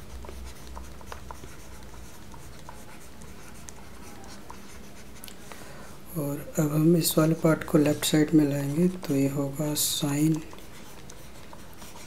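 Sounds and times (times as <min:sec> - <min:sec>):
stylus tapping and scratching: 0:00.0 - 0:05.6, 0:06.2 - 0:12.0
steady low hum: 0:00.0 - 0:12.0.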